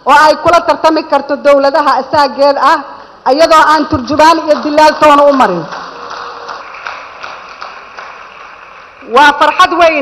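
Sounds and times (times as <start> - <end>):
audience applauding: 4.4 - 10.0.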